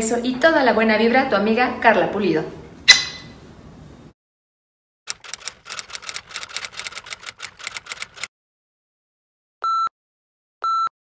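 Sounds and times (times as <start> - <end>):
typewriter key clatter: 5.1 - 8.3.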